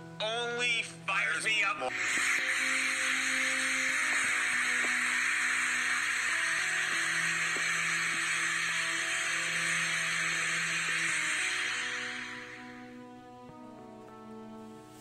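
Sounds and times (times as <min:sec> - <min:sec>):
slow music of held notes: 0:00.0 - 0:15.0
steady hiss: 0:01.9 - 0:15.0.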